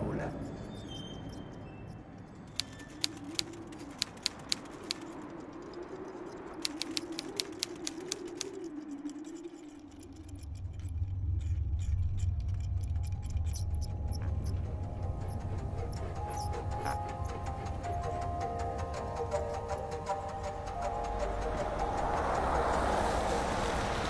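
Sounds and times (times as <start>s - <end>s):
typewriter keys clicking: 2.5s - 5.2s, 6.6s - 8.7s
low wavering drone: 7.2s - 24.0s.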